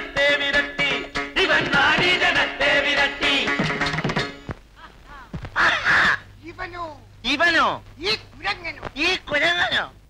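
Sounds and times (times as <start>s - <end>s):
man shouting harshly: 5.1s - 7.5s.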